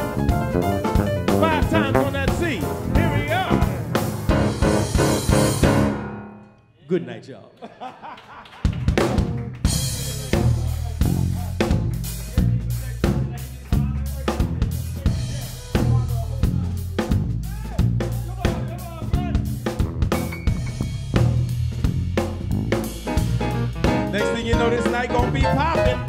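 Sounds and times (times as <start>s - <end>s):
drum kit beat: 0.0s - 6.2s, 8.6s - 26.0s
electric bass line: 0.0s - 6.4s, 9.1s - 26.0s.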